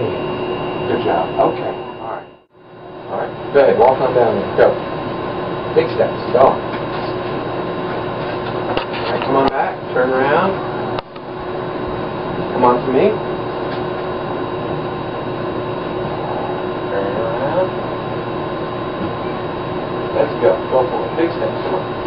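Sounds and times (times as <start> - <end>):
steady room hum: 0.0 - 22.0.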